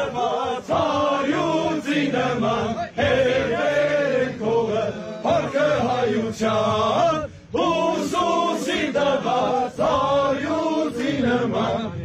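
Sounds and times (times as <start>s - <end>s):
men chanting together: 0.0s - 12.0s.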